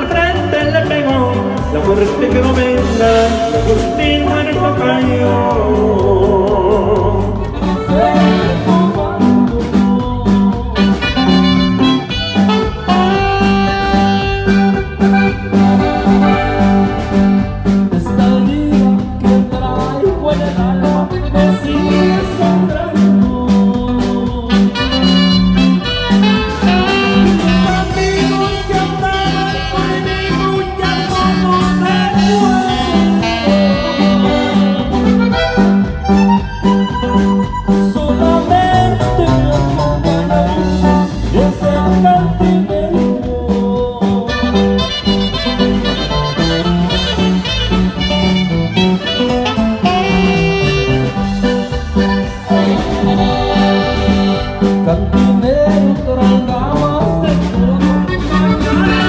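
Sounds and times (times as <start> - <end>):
live band playing: 0.0 - 59.0.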